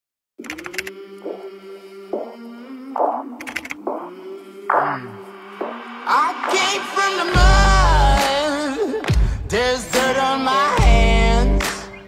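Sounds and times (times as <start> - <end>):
clicks: 0.4 - 1.5, 3.0 - 4.1
person singing a word: 0.5 - 11.9.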